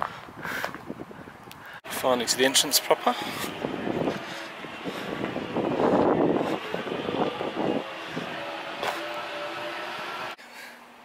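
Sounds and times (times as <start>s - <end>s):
traffic hum: 0.0s - 11.0s
car passing: 1.9s - 10.4s.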